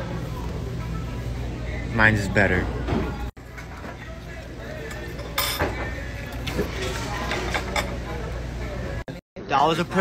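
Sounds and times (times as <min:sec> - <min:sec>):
background chatter: 0:00.0 - 0:10.0
dishes and cutlery clinking: 0:04.8 - 0:08.3.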